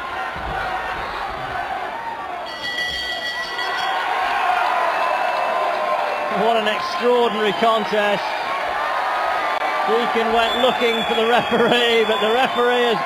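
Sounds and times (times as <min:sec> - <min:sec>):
crowd shouting and cheering: 0:00.0 - 0:13.0
bell ringing: 0:02.4 - 0:04.5.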